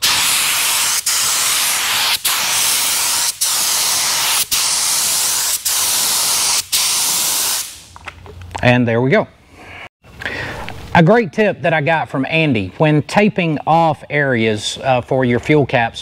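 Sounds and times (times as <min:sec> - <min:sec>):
spray gun air hiss: 0:00.0 - 0:07.9.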